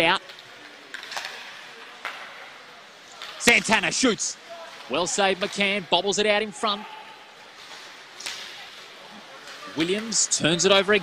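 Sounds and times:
hockey stick clack: 0:00.2 - 0:02.5.

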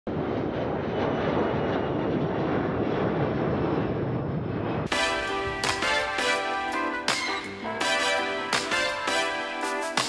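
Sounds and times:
steady rushing outdoor noise: 0:00.1 - 0:10.0.

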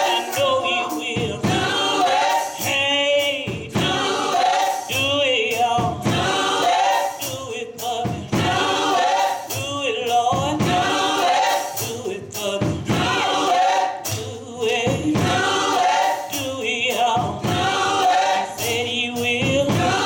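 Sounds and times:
gospel choir singing: 0:00.0 - 0:20.0
sharp rhythmic beats: 0:00.0 - 0:20.0.

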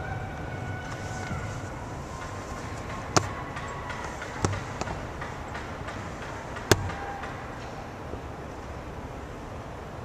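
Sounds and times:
ice rink skating noise: 0:00.2 - 0:07.9
sharp loud stick knock: 0:02.2 - 0:07.4.

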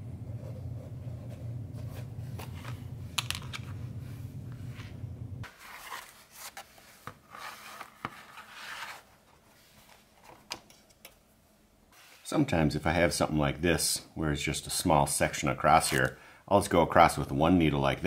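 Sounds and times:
steady low hum: 0:00.0 - 0:05.5.

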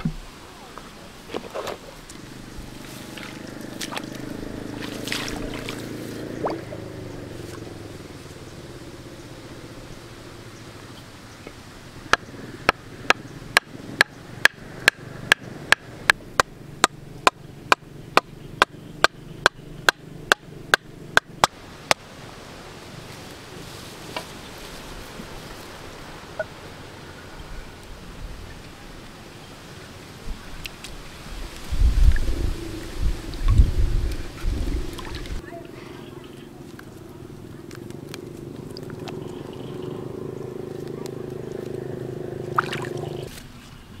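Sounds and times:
low rumbling: 0:01.8 - 0:21.5, 0:31.2 - 0:43.4.

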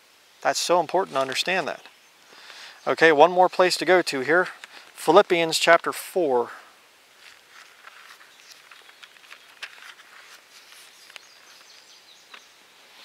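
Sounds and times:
pages rustling and clicking: 0:01.1 - 0:01.5, 0:07.2 - 0:12.5.

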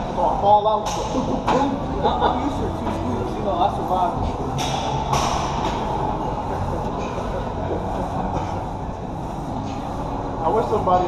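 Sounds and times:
distant voices and gym equipment: 0:00.0 - 0:11.0.

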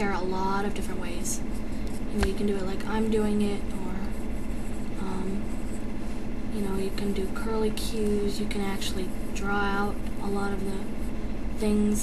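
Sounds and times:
low hum and rumble: 0:00.0 - 0:12.0.

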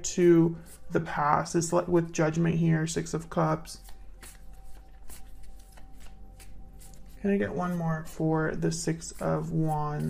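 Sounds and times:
cards being shuffled: 0:00.5 - 0:01.7, 0:03.1 - 0:10.0.

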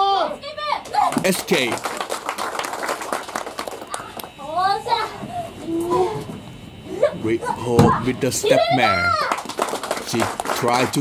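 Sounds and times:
hand clapping: 0:00.8 - 0:04.3, 0:09.1 - 0:11.0.

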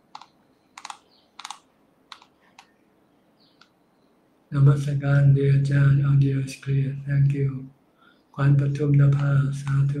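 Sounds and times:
computer keyboard typing: 0:00.1 - 0:02.7.

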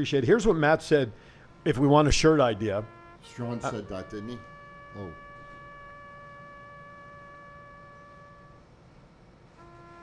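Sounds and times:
brass instrument holding long note: 0:00.0 - 0:08.8, 0:09.5 - 0:10.0.

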